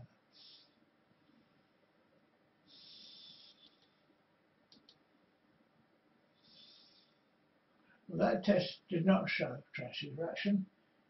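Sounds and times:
faint short hisses: 0.4 - 0.7
faint ticks: 3.5 - 4.0.

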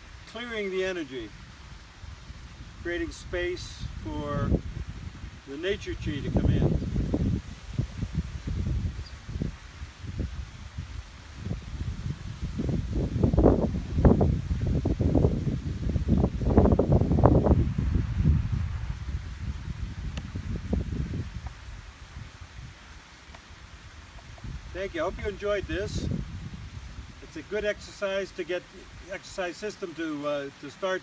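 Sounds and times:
leaves rustling: 0.0 - 31.0
wind buffeting microphone: 1.3 - 27.8.

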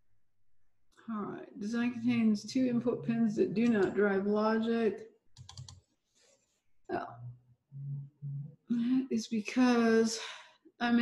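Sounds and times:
person humming: 2.6 - 3.9, 6.9 - 8.8.

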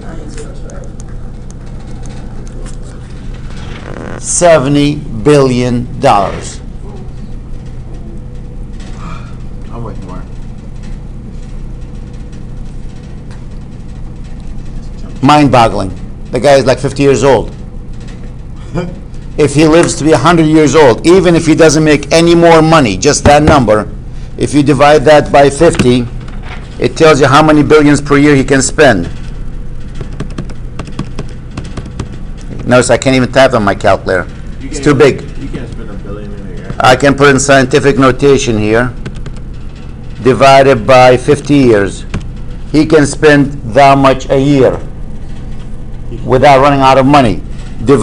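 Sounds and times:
low background hum with hiss: 0.0 - 48.0
calculator keys clicking: 30.0 - 32.7, 39.0 - 39.4.

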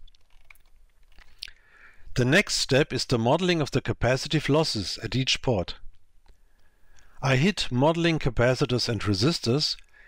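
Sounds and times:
person inhaling: 1.4 - 2.1
person speaking: 2.1 - 5.9, 7.2 - 9.9.

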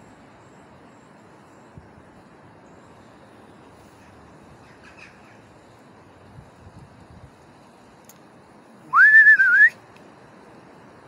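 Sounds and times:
person whistling: 8.9 - 9.8.

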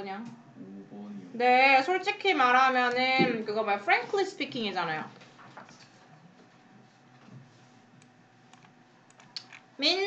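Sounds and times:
computer clicks: 8.0 - 9.7.

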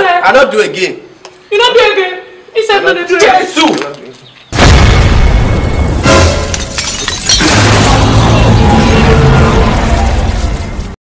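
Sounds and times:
glass shattering: 6.0 - 8.2
loud music: 7.4 - 10.2.

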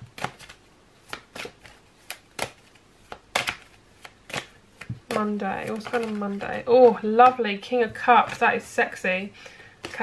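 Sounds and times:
cards being shuffled: 0.0 - 7.3.

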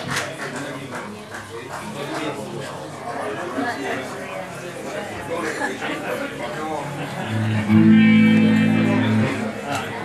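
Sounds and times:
rock band holding loud chord: 7.3 - 9.6.

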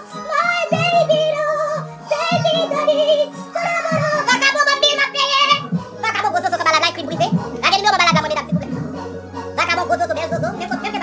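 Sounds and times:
song with sung lead vocal: 0.0 - 11.0
drum beat: 3.9 - 4.4, 5.5 - 9.0
bass notes: 5.4 - 11.0.

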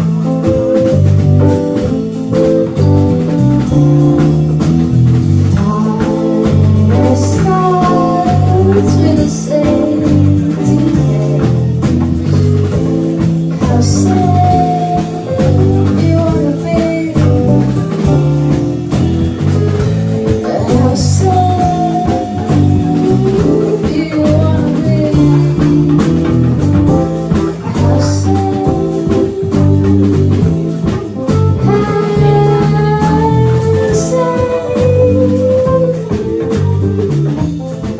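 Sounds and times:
drum kit: 0.0 - 37.9
electric bass line: 0.0 - 37.9
keyboard chords: 0.0 - 37.9.

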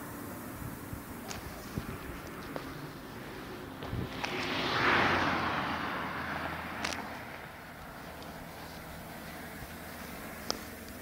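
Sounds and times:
road vehicle passing: 0.0 - 11.0.

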